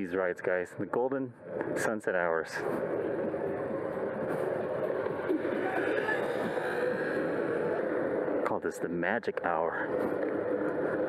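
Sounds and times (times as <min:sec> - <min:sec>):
indistinct voices: 0:01.6 - 0:10.1
tyre noise on pavement: 0:02.6 - 0:08.3
wind rushing: 0:02.6 - 0:08.5.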